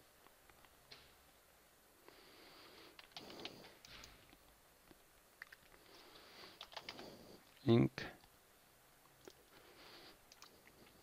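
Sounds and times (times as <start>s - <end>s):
keystrokes on computer keyboard: 3.0s - 4.2s, 6.6s - 7.1s, 10.3s - 10.6s.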